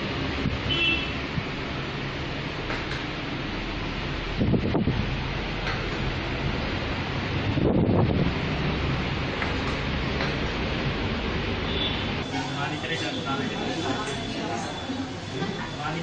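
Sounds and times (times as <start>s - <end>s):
wind noise on microphone: 4.2s - 5.3s, 6.4s - 9.2s
low wind gusts: 4.3s - 5.3s, 6.4s - 9.3s.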